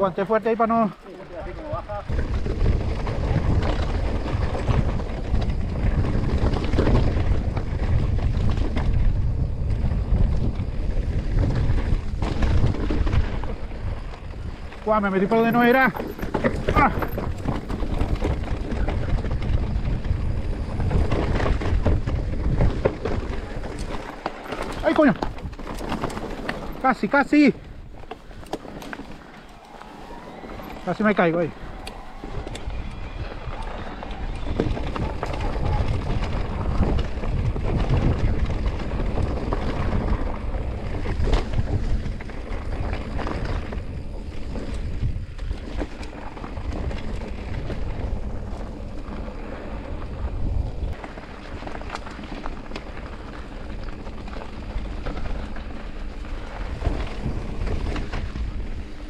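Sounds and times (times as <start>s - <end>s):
bike tyres rattling over dirt: 0.0s - 59.0s
wind rumbling on microphone: 0.0s - 59.0s.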